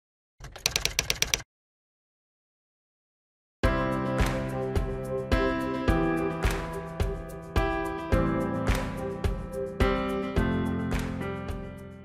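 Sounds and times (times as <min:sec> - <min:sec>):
keyboard key clicks: 0:00.4 - 0:01.4.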